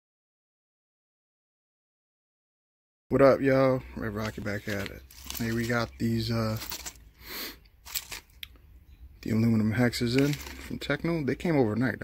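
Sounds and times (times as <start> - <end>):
plastic bag crinkling: 4.1 - 7.2, 7.8 - 8.5, 9.8 - 10.9
small metal parts clicking: 6.5 - 7.0, 7.8 - 8.4.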